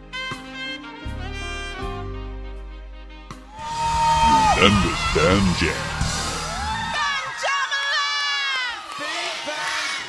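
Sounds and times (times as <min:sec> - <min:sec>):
music: 0:00.0 - 0:07.2
children cheering and shouting: 0:03.6 - 0:08.8.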